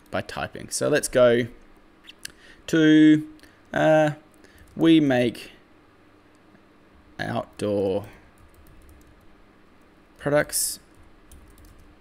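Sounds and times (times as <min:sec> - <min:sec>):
computer keyboard typing: 0:07.6 - 0:09.3, 0:11.0 - 0:11.9.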